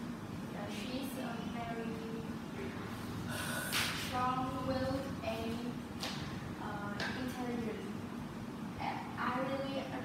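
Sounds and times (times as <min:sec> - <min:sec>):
low steady room hum: 0:00.0 - 0:10.0
girl's sharp breath: 0:03.3 - 0:03.8.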